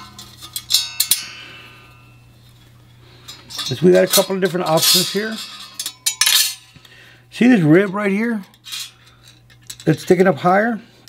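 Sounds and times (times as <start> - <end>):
metal parts clinking on metal: 0.0 - 2.1, 3.2 - 6.8, 7.8 - 10.2
low steady hum: 0.0 - 11.0.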